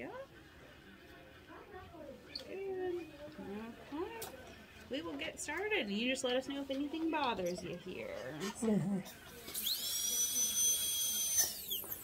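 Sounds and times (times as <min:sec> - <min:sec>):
dental drill whining: 0:09.4 - 0:12.0.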